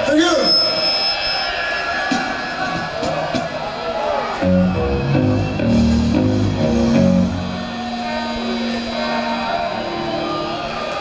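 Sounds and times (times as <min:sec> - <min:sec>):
heavy metal band playing: 0:00.1 - 0:11.0
electric guitar notes ringing: 0:04.4 - 0:11.0.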